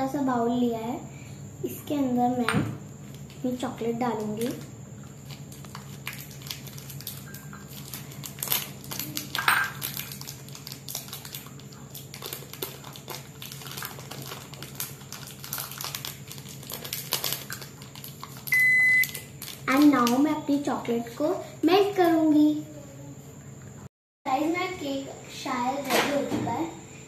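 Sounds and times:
plastic wrapper crinkling: 0:04.1 - 0:20.2
microwave oven beep: 0:18.5 - 0:19.3.

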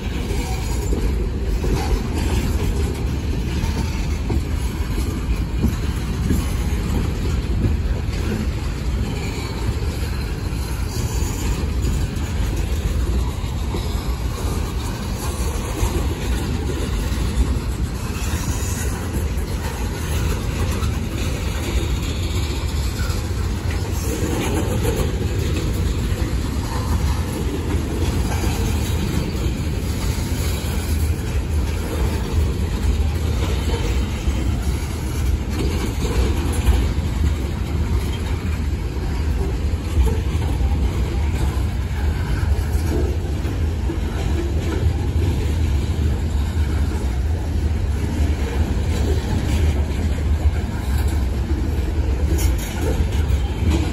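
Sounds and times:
freight train rumbling past: 0:00.0 - 0:53.9
wheels clacking over rail joints: 0:00.0 - 0:53.9.

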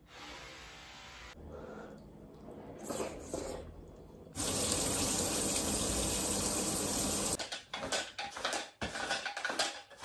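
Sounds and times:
water running from tap: 0:02.0 - 0:07.4.

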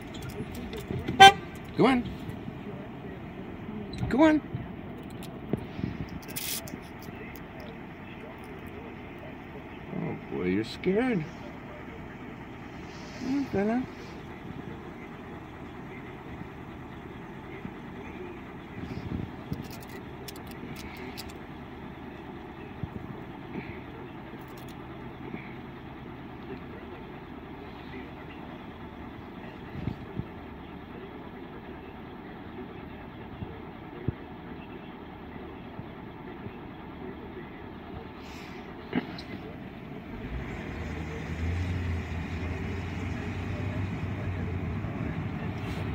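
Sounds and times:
road traffic hum: 0:00.0 - 0:45.9
vehicle idling: 0:00.0 - 0:45.9.

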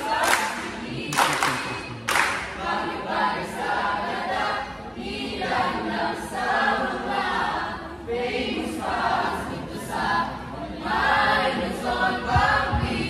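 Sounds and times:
group chanting: 0:00.0 - 0:13.0
low thumps: 0:12.3 - 0:13.0.

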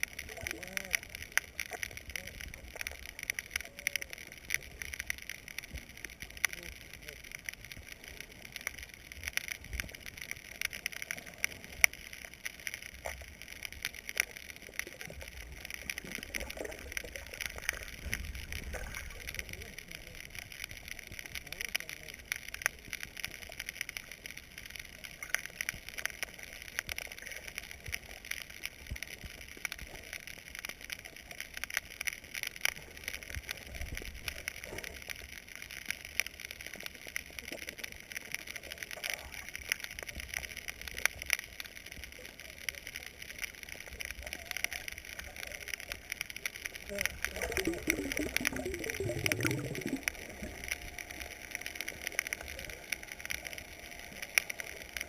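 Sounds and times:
low underwater rumble: 0:00.0 - 0:55.0
sharp underwater clicks: 0:00.0 - 0:55.0.

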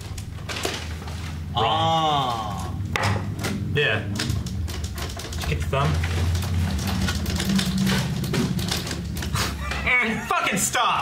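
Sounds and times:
low hum: 0:00.0 - 0:09.9
men laughing: 0:09.2 - 0:11.0.

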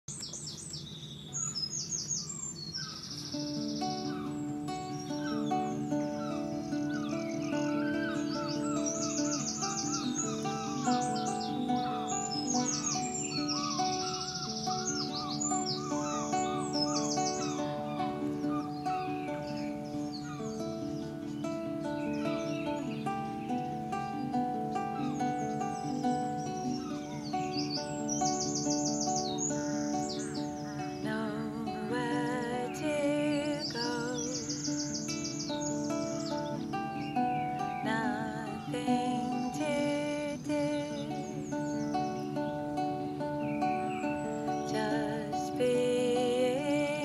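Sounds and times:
birds singing with trills: 0:00.1 - 0:47.0
acoustic guitar playing: 0:01.8 - 0:47.0.

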